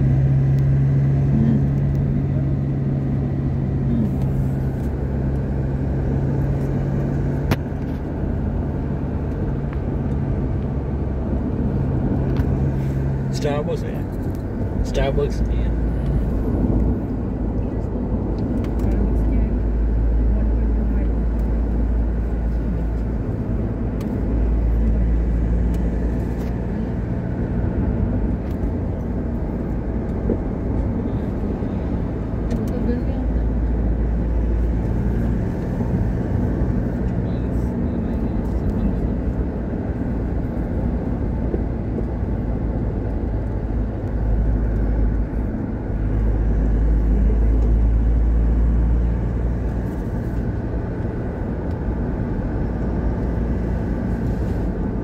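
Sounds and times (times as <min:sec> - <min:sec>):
car road and engine noise: 0:00.0 - 0:55.0.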